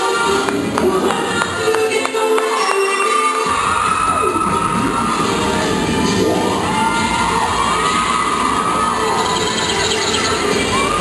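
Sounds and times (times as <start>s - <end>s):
cheerleading routine music: 0.0s - 11.0s
spectators cheering and screaming: 0.0s - 11.0s
long high shrieks: 2.5s - 11.0s.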